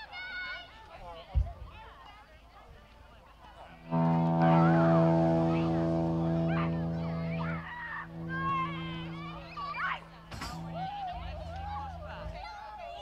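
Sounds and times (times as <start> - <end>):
trumpet holding low note: 3.8 - 12.1.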